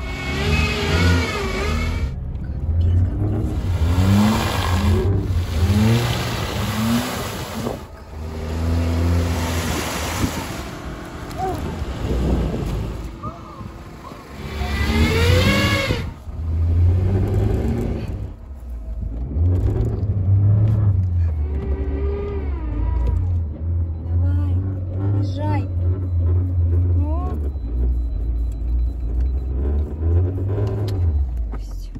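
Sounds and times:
car engine revving: 0:00.0 - 0:31.5.

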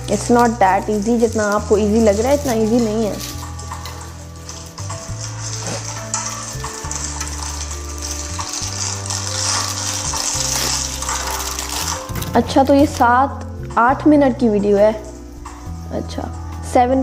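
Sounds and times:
noodles sizzling in hot oil: 0:00.0 - 0:16.5
background music with deep bass: 0:00.0 - 0:17.0.

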